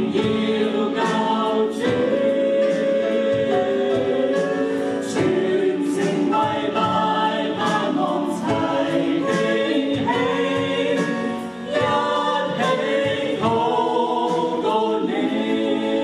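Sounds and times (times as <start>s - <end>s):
group singing worship song: 0.0s - 16.0s.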